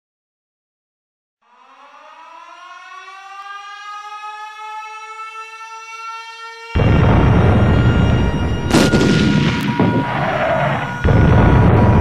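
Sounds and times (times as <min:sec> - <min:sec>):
air-raid siren rising: 0:01.4 - 0:12.0.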